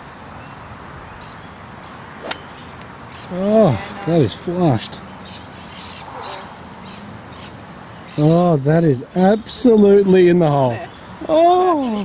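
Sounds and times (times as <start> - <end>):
steady outdoor noise: 0.0 - 12.0
birds calling: 0.4 - 12.0.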